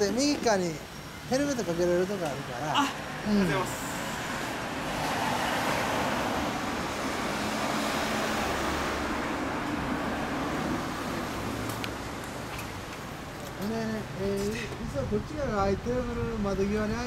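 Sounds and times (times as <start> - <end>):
vehicle passing on street: 0.0 - 17.0.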